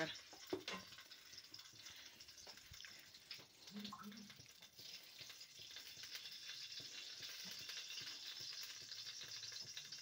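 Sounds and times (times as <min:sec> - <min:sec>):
oil sizzling in a pan: 0:00.0 - 0:10.0
small crackles: 0:00.0 - 0:10.0.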